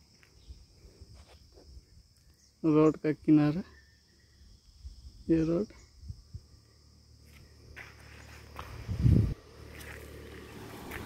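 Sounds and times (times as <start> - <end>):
footsteps on gravel: 7.2 - 11.0.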